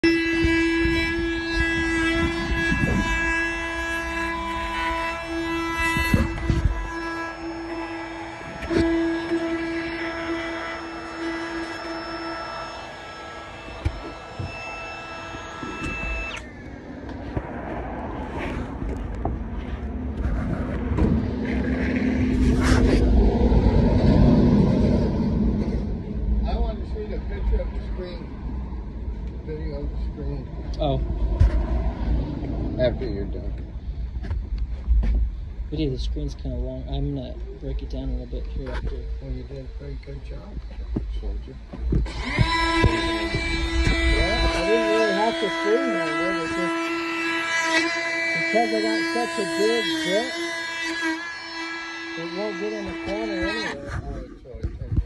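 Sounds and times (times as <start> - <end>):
router bit cutting wood: 0.0 - 16.6, 41.9 - 53.9
router whining at high speed: 0.0 - 17.3, 35.6 - 55.0.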